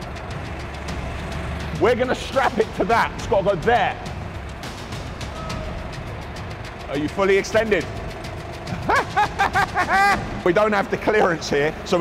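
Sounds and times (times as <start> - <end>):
engine running at low revs: 0.0 - 12.0.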